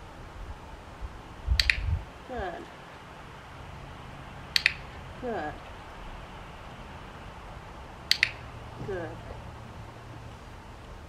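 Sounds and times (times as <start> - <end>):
training clicker double click: 1.5 - 1.9, 4.5 - 5.0, 8.1 - 8.5.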